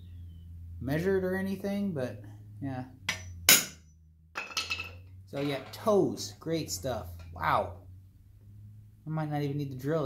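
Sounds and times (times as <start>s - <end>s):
hammer striking metal punch: 3.1s - 4.9s.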